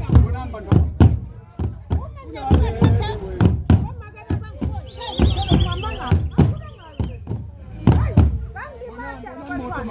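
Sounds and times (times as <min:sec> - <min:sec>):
large drum beaten with sticks: 0:00.0 - 0:08.5
voices singing and calling: 0:00.0 - 0:09.9.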